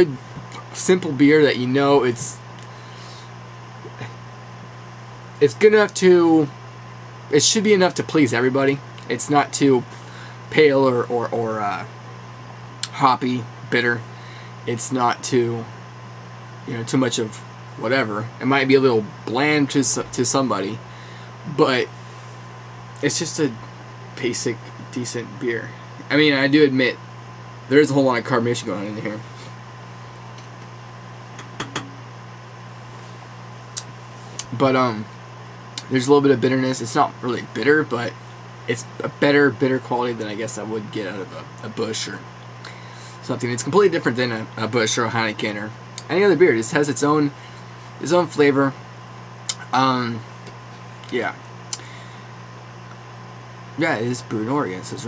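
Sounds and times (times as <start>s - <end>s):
low hum with light hiss: 0.0s - 55.0s.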